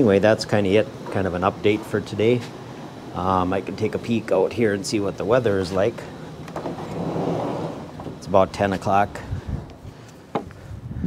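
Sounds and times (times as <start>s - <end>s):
wooden door scraping open: 6.5s - 8.7s.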